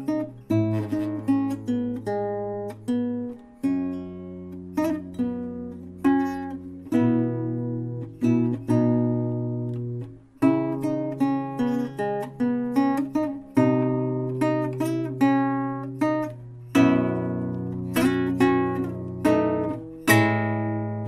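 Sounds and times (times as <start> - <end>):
acoustic guitar folk piece: 0.0 - 21.0.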